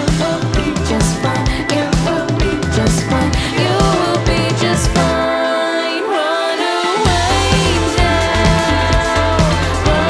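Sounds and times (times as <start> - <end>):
steady drum beat: 0.0 - 5.3, 7.0 - 10.0.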